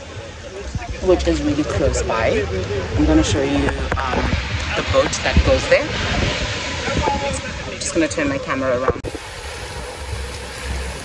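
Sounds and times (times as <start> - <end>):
waves washing onto beach: 0.0 - 11.0
wind rumbling on microphone: 0.0 - 11.0.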